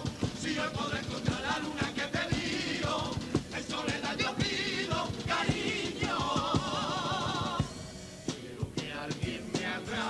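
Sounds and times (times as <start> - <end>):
group singing: 0.0 - 10.0
guitar accompaniment: 0.0 - 10.0
steady drum beat: 0.0 - 10.0.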